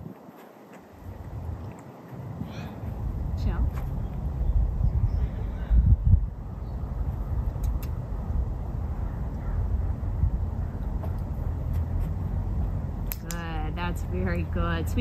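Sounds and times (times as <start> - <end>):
wind buffeting microphone: 0.0 - 15.0
sharp clicks: 7.5 - 8.0, 13.0 - 13.5.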